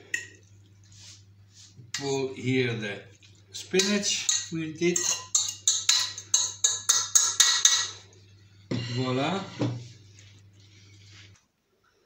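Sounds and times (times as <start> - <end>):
metal utensil scraping saucepan: 3.8 - 8.0, 8.7 - 10.0.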